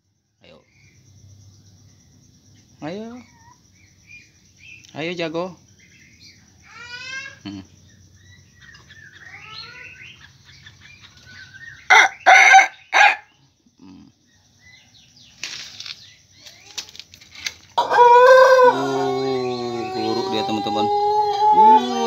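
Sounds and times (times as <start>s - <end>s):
faint chirping: 0.0s - 17.5s, 18.5s - 22.0s
rooster crowing: 11.9s - 13.3s, 17.8s - 22.0s.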